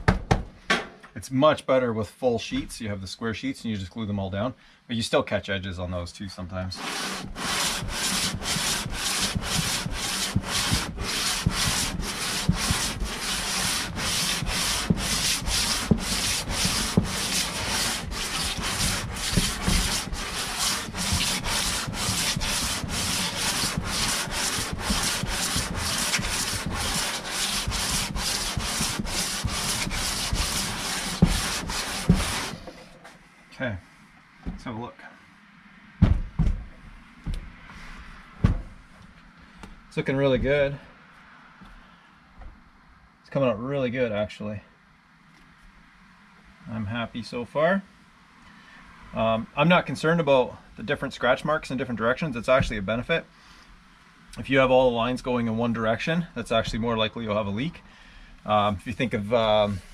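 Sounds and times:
metal rasping on sandpaper: 6.8s - 32.6s.

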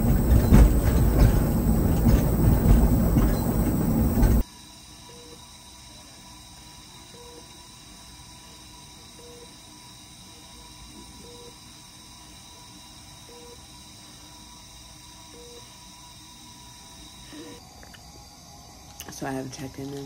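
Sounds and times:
steady hiss and hum: 0.0s - 20.0s.

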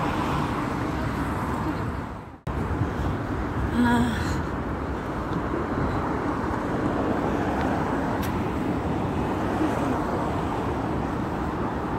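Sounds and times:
traffic rumble: 0.0s - 11.9s.

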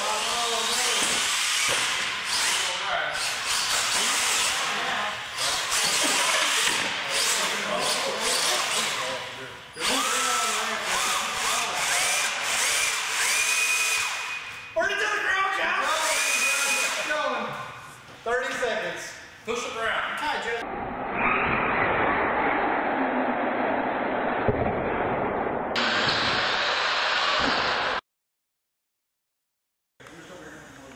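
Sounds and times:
toy truck electric motor whining: 0.0s - 9.1s, 9.8s - 14.5s, 15.9s - 17.1s.

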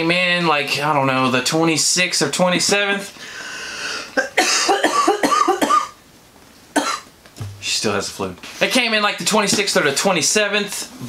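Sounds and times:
woman coughing: 4.2s - 6.0s, 6.8s - 7.1s.

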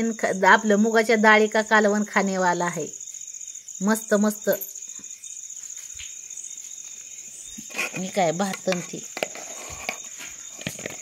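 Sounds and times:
insect trilling: 0.0s - 11.0s.

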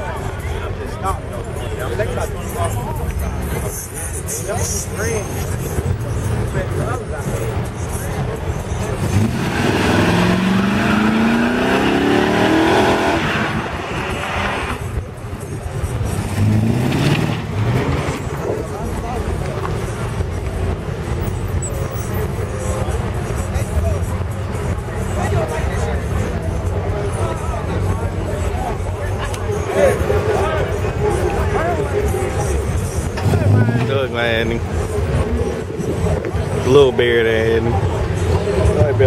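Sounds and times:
car engine revving: 7.2s - 23.3s, 32.3s - 36.6s.

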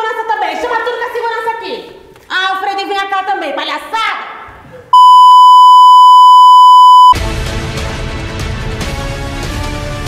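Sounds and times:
loud electronic beep: 5.0s - 7.2s
music: 7.2s - 10.0s.

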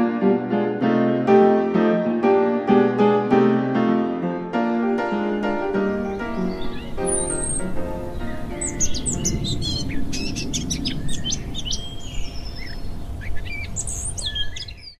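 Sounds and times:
piano music: 0.0s - 12.0s
birds chirping and trilling: 4.9s - 15.0s
steady low rumble: 5.8s - 13.7s.

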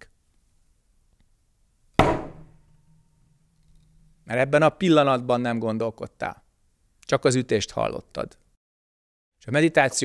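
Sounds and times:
wooden staff striking: 2.0s - 4.1s.

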